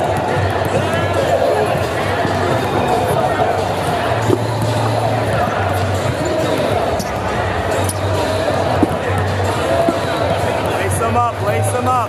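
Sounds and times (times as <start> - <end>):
hum of voices: 0.0 - 12.0
basketballs bouncing on hardwood: 8.6 - 10.7.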